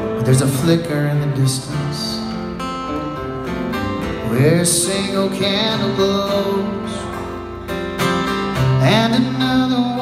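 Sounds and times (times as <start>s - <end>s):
acoustic guitars strumming: 0.0s - 10.0s.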